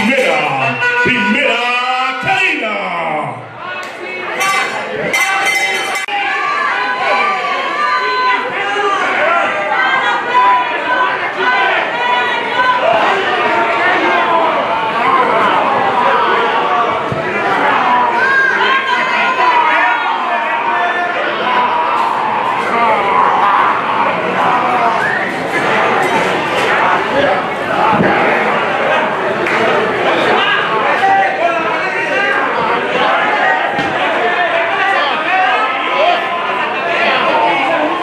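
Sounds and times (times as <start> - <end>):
loud voice: 0.0 - 5.4
crowd shouting and chattering: 0.0 - 38.0.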